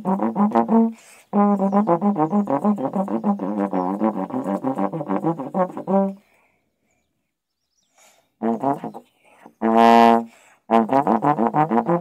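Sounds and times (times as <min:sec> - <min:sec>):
faint bird chirps: 0:01.5 - 0:04.5, 0:05.7 - 0:09.5.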